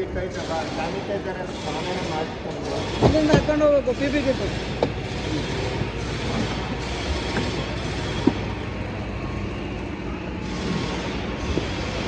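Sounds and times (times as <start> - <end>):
mechanical rumble: 0.0 - 12.0.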